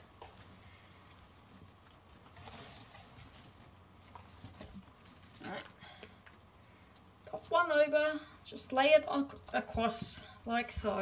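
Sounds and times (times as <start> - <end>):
dry plant strips rustling: 0.0 - 9.7.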